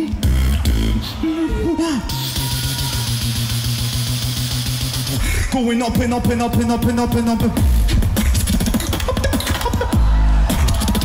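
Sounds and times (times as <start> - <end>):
beatboxing bass buzz: 0.0 - 1.2, 2.1 - 11.0
beatboxing hiss: 7.8 - 9.8.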